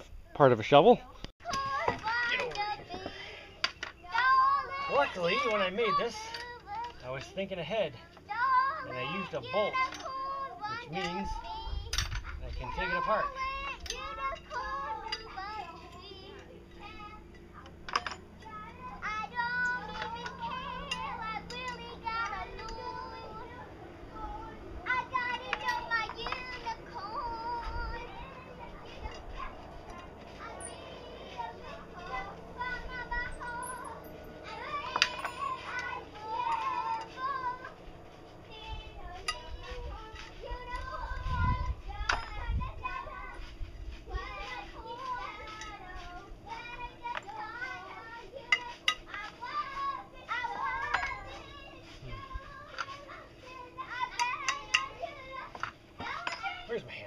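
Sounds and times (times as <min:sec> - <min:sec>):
children chattering and singing: 0:01.4 - 0:56.7
hand tools tapping on metal: 0:11.9 - 0:23.2, 0:24.9 - 0:37.8, 0:42.0 - 0:42.5, 0:46.5 - 0:51.8, 0:53.8 - 0:56.6.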